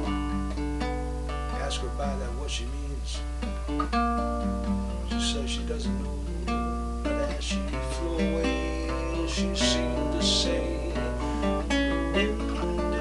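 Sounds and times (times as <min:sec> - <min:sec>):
solo acoustic guitar: 0:00.0 - 0:13.0.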